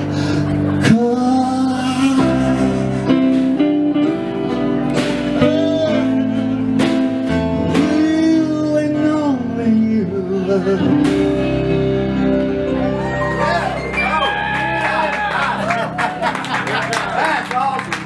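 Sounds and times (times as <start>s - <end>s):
electric guitar: 0.0s - 17.4s
man singing with vibrato: 0.8s - 3.3s, 5.4s - 6.6s, 7.6s - 11.6s.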